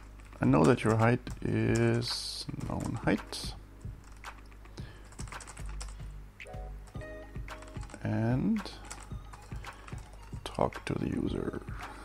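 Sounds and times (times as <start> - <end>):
keyboard typing: 0.0 - 10.6
background music: 0.0 - 12.0.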